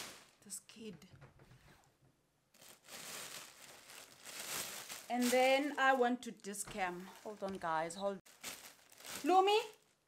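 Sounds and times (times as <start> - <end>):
packaging rustling: 0.0 - 0.4, 2.5 - 6.1, 7.0 - 10.0.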